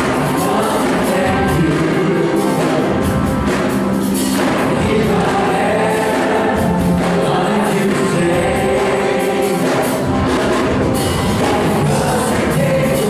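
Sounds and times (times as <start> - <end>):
bass guitar: 0.0 - 13.0
group of voices singing: 0.0 - 13.0
keyboard: 0.0 - 13.0.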